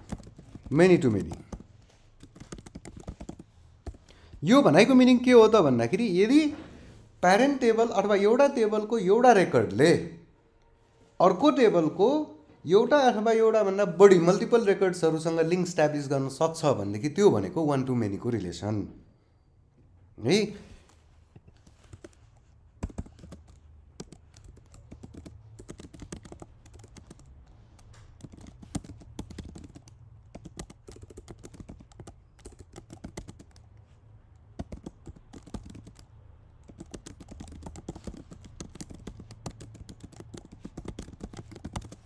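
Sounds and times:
computer keyboard typing: 0:00.0 - 0:05.2, 0:20.8 - 0:42.0.

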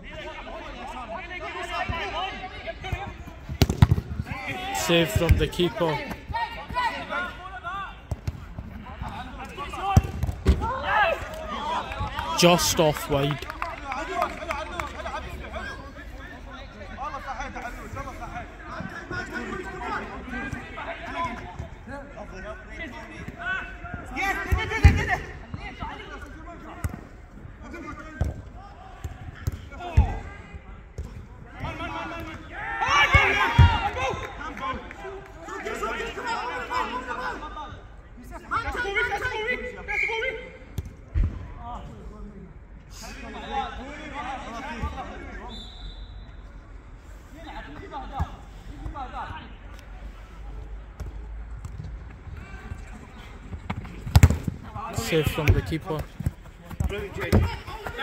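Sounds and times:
players shouting: 0:00.3 - 0:08.1, 0:08.8 - 0:15.7, 0:31.5 - 0:37.5, 0:56.8 - 0:58.0
football being kicked: 0:02.9 - 0:04.3, 0:53.6 - 0:54.6, 0:55.4 - 0:58.0.

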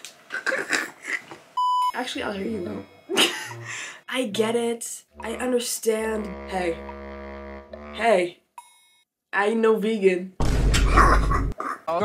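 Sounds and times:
censor beep: 0:01.6 - 0:02.0
woman laughing: 0:03.1 - 0:03.9.

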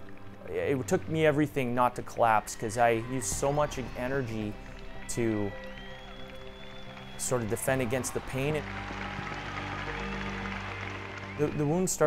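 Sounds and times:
music with soft held notes: 0:00.0 - 0:12.0.

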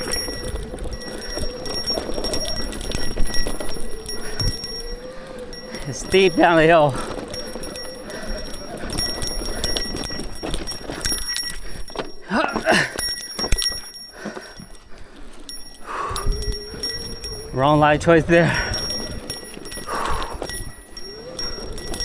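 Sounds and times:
rider vocal sound: 0:00.0 - 0:10.3, 0:12.2 - 0:13.0, 0:17.4 - 0:20.5
bicycle bell jingling: 0:00.0 - 0:22.0
bike knocking and rattling: 0:00.0 - 0:22.0
bike rolling on dirt trail: 0:00.0 - 0:22.0.

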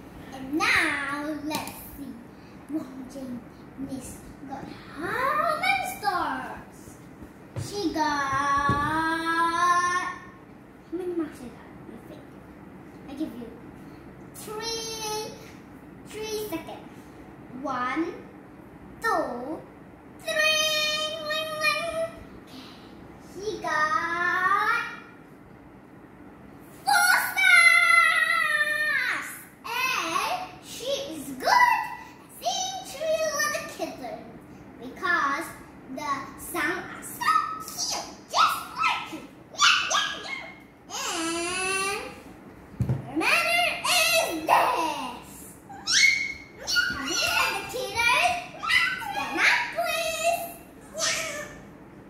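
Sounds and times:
girls calling and chattering: 0:43.3 - 0:51.6
girls squealing: 0:45.7 - 0:49.7.

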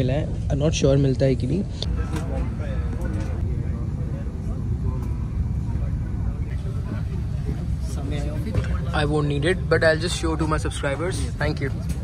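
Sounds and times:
aircraft cabin rumble: 0:01.7 - 0:12.0
faint voices: 0:01.8 - 0:12.0.

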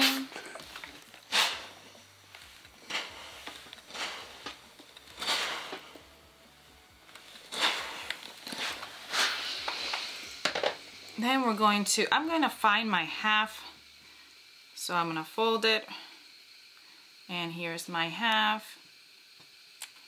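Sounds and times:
steam iron hissing: 0:00.0 - 0:20.0.

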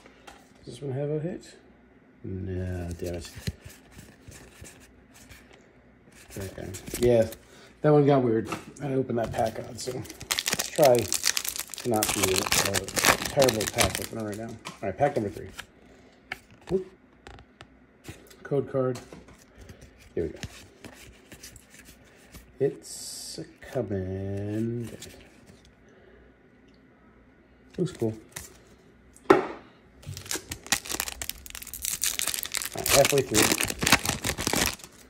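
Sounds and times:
trading cards rustling and clicking: 0:06.2 - 0:07.4, 0:09.3 - 0:14.6, 0:30.0 - 0:35.0
foil wrapper crinkling and tearing: 0:09.5 - 0:14.6, 0:30.0 - 0:35.0.

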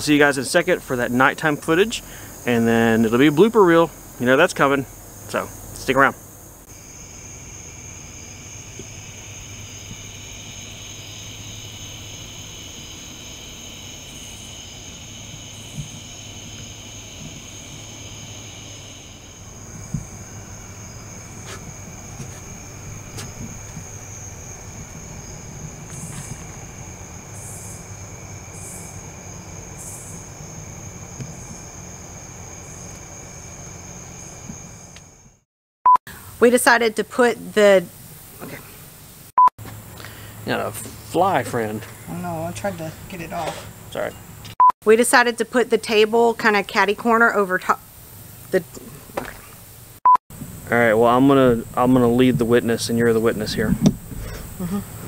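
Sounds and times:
crickets and insects trilling: 0:00.0 - 0:35.4, 0:36.1 - 0:55.0.

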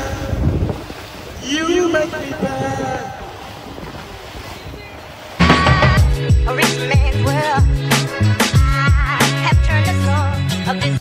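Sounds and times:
wind buffeting microphone: 0:00.0 - 0:07.7
sea water rushing: 0:00.0 - 0:11.0.

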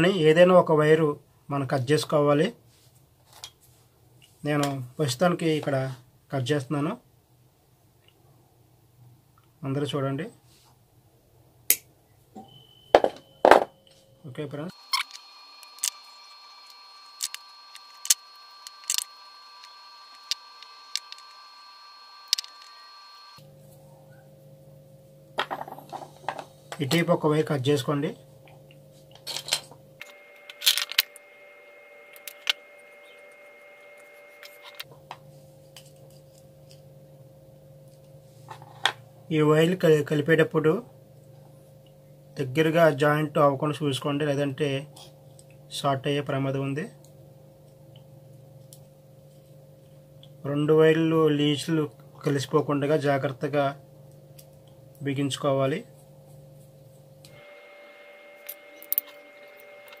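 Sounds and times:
plastic parts clicking: 0:17.2 - 0:21.3, 0:30.5 - 0:31.1.

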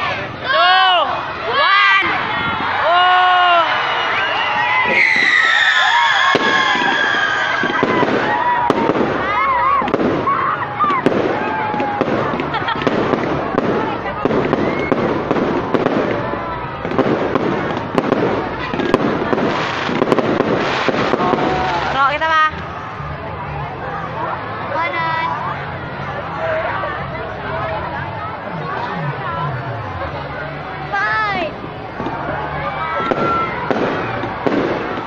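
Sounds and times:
people's voices: 0:00.0 - 0:35.0
fireworks bursting and crackling: 0:03.6 - 0:23.2, 0:30.9 - 0:35.0.

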